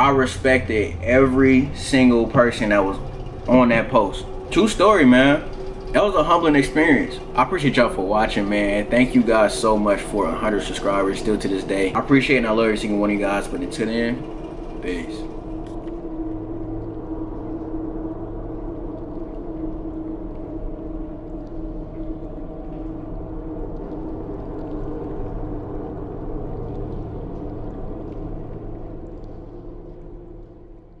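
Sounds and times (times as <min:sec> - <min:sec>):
dark ambient drone music: 0:00.0 - 0:31.0.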